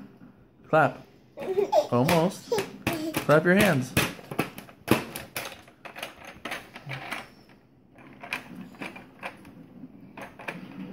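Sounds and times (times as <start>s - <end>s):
plastic toys clicking and clacking: 2.1s - 9.6s, 10.2s - 10.8s.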